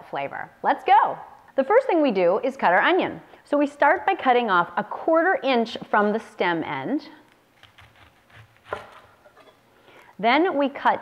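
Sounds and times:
knife striking cutting board: 7.6s - 9.6s.

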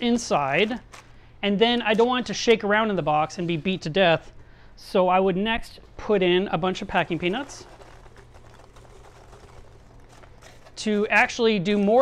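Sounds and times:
packing peanuts pouring: 6.5s - 12.0s.

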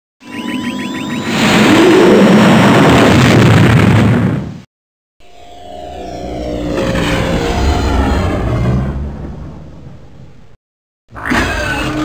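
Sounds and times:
spaceship engine roar: 5.2s - 10.6s.

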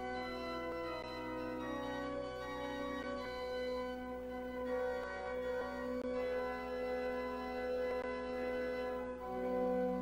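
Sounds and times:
organ playing sustained chords: 0.0s - 10.0s.

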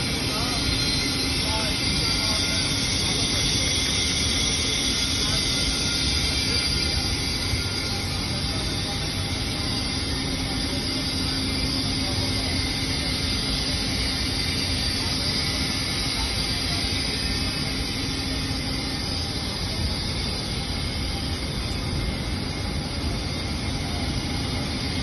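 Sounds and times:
rushing hiss of gas pipework: 0.0s - 25.0s.

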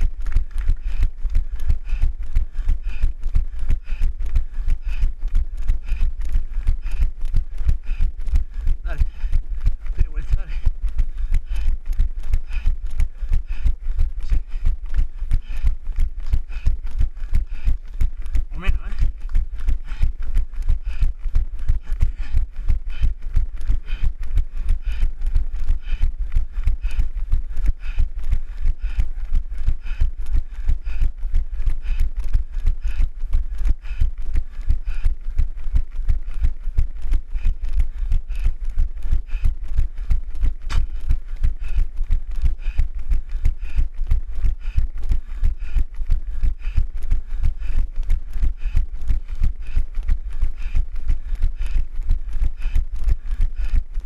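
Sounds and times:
heavy breathing: 0.0s - 54.0s
running footfalls on asphalt: 0.0s - 54.0s.

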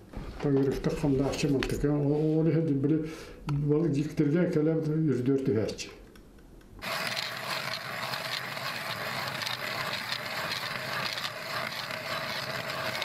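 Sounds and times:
ice auger scraping ice: 6.8s - 13.0s.

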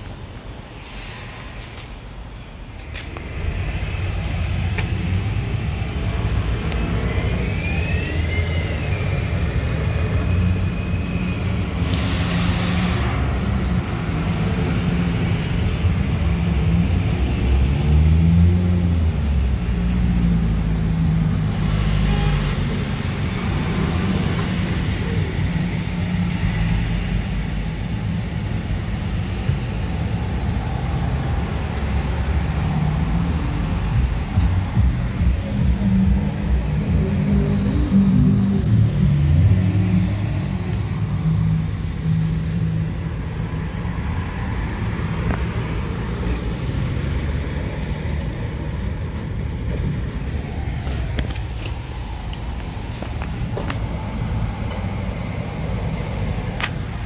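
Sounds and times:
cars passing: 0.0s - 57.0s.

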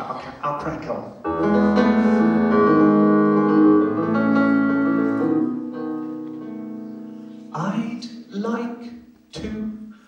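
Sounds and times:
electronic keyboard chords: 1.3s - 7.8s.

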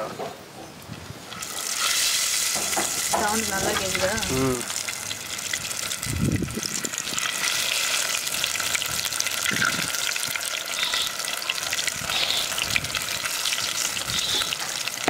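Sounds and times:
fish deep-frying in oil: 1.2s - 15.0s.

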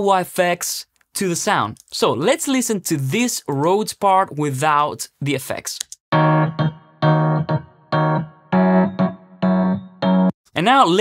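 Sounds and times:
electric piano chord stabs: 6.1s - 10.3s.

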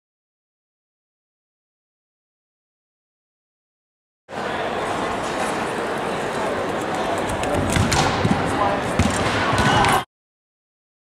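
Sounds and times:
crowd chatter echoing: 4.3s - 10.1s.

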